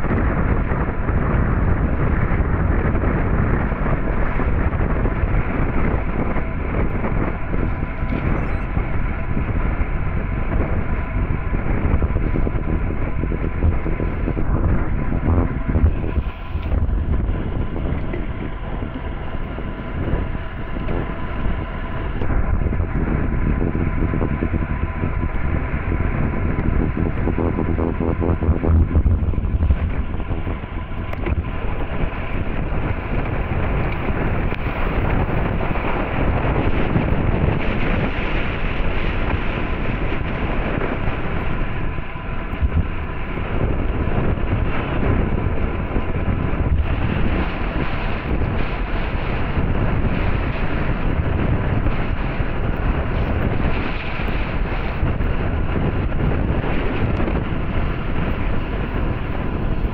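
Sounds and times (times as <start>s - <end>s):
wind rush on microphone: 0.0s - 59.9s.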